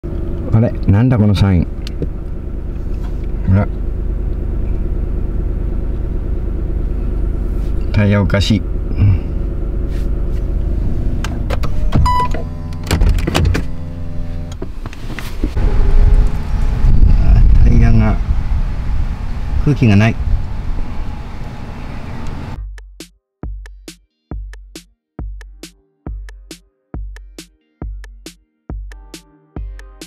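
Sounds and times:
car engine hum inside cabin: 0:00.0 - 0:22.6.

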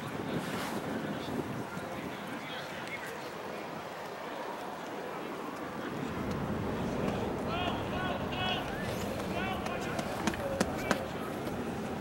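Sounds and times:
outdoor background noise: 0:00.0 - 0:12.0
distant players shouting: 0:06.0 - 0:11.5.

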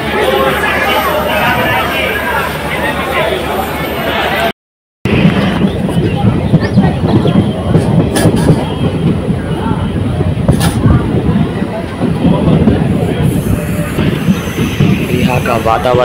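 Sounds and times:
train wheels rumbling on rails: 0:05.1 - 0:16.0.

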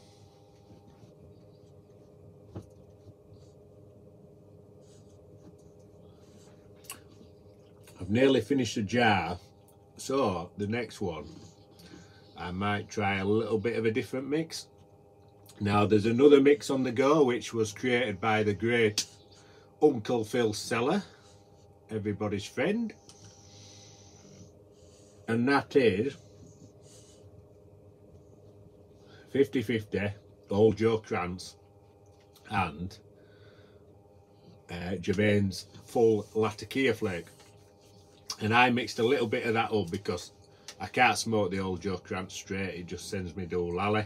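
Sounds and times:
low steady hum: 0:00.0 - 0:44.0
lip clicks: 0:06.8 - 0:07.1.

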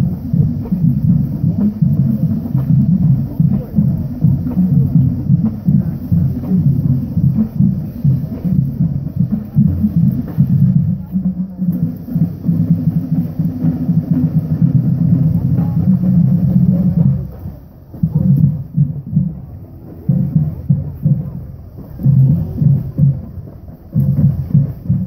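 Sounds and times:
marching drumline: 0:00.0 - 0:25.0.

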